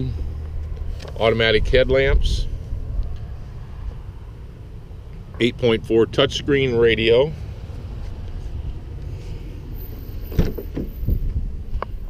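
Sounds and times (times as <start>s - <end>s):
steady low rumble: 0.0s - 12.0s
truck door clicks and knocks: 10.3s - 11.2s.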